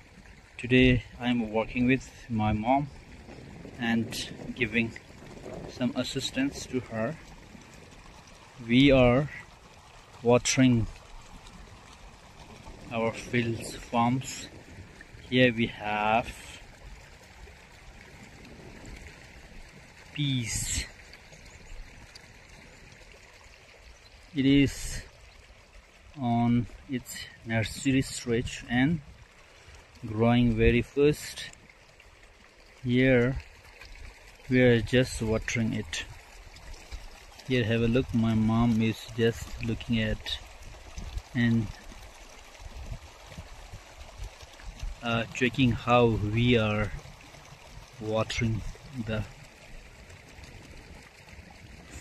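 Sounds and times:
water flowing along a furrow: 0.0 - 52.0.

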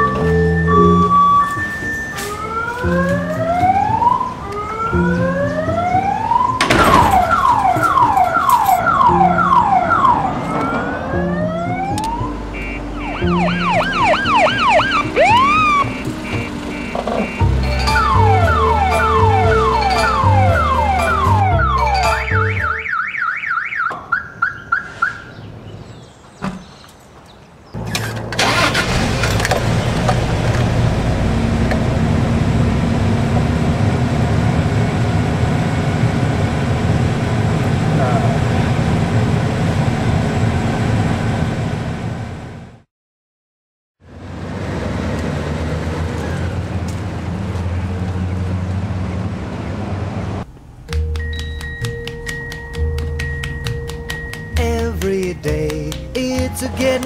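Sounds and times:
car alarm siren whooping: 0.0 - 25.2
car engine running: 12.6 - 22.7.

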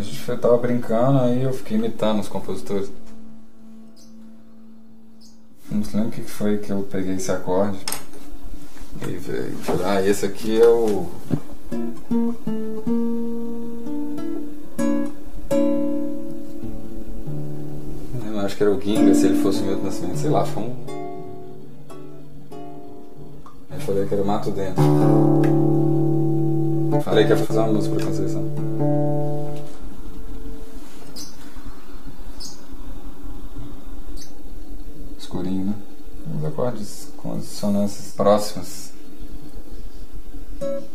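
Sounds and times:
acoustic guitar playing: 0.0 - 7.6, 9.6 - 35.3, 39.7 - 40.9.

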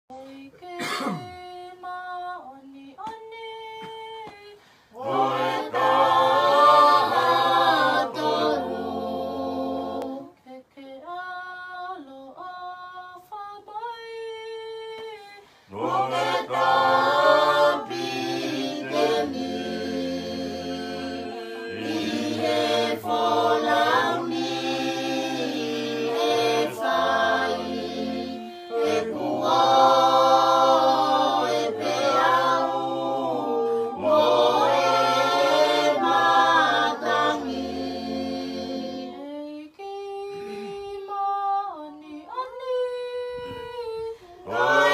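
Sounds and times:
group singing in harmony: 0.1 - 3.2, 4.2 - 13.4, 15.2 - 44.9
woman singing alone: 0.1 - 4.6, 39.2 - 44.5.

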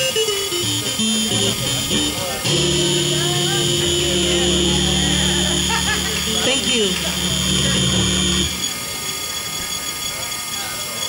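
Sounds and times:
jazz band holding a chord: 0.0 - 8.6
thin high whine: 0.0 - 11.0.

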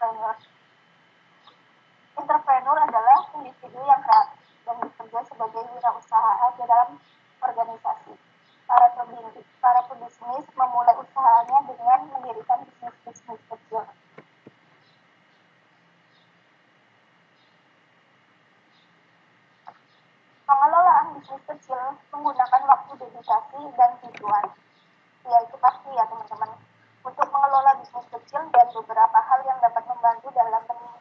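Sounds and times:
person speaking over call: 0.0 - 0.4, 2.2 - 13.9, 20.5 - 24.6, 25.3 - 31.0.

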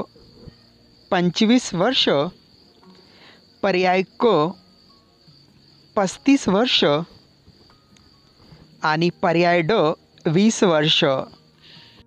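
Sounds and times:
high-pitched insect trill: 0.0 - 12.0
person speaking: 6.0 - 7.2, 8.8 - 11.3.

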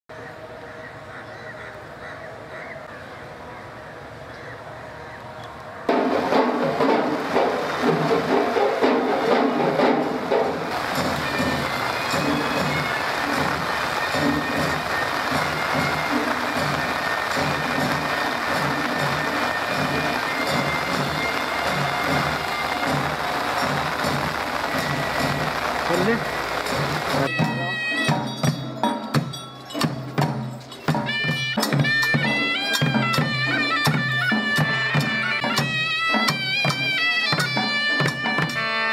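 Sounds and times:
loud drumming: 5.9 - 38.9
murmur of voices: 7.8 - 31.1
high held instrumental tones: 7.8 - 38.9.

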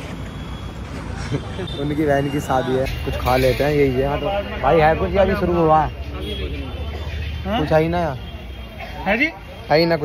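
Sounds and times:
low rumble of traffic: 0.0 - 10.0
people's voices: 1.0 - 10.0.

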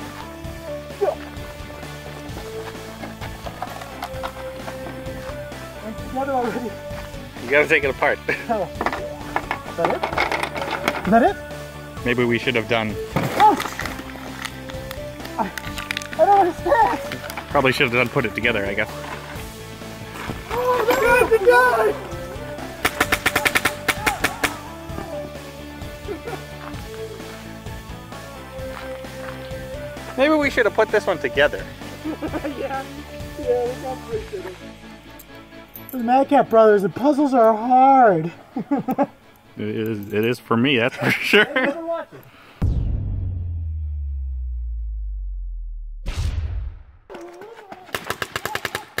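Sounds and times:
background music: 0.0 - 47.0
paintball marker rapid shots: 22.8 - 24.6, 47.9 - 49.0.

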